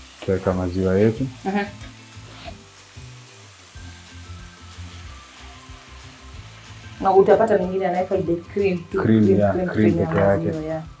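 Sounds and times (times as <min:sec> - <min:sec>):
spinach sizzling in a frying pan: 0:00.0 - 0:11.0.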